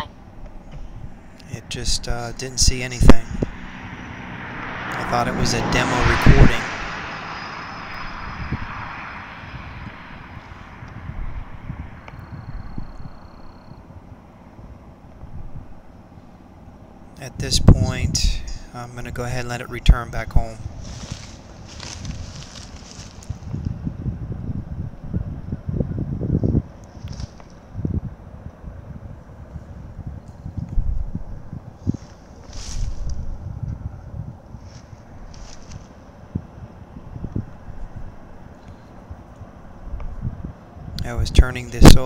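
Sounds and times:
wind buffeting microphone: 0.0 - 42.0
scuffs and rustles: 20.7 - 23.7, 31.8 - 33.3, 34.6 - 36.0.

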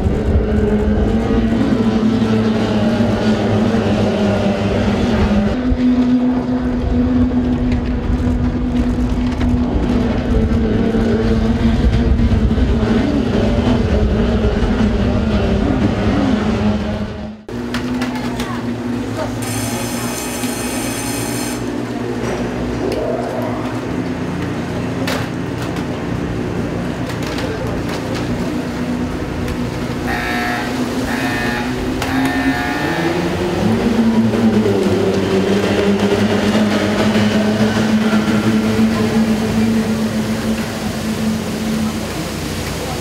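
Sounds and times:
outboard motors droning: 0.0 - 43.0.

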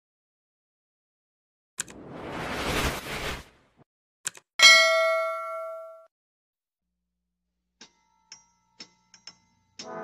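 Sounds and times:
bright bell ding: 4.6 - 6.1.

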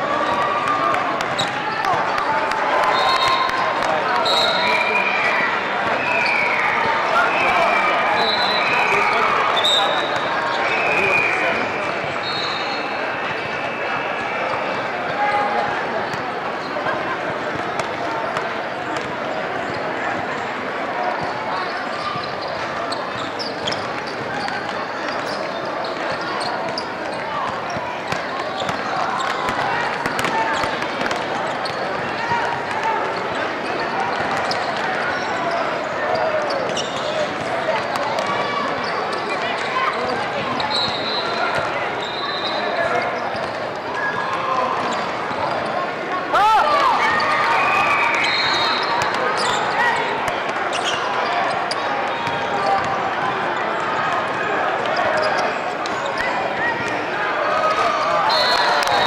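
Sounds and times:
chatter of many voices: 0.0 - 59.0.

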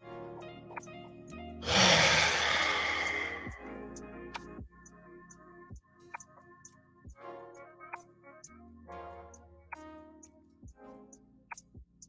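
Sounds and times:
background music: 0.0 - 12.0
loud sigh: 1.6 - 3.7.

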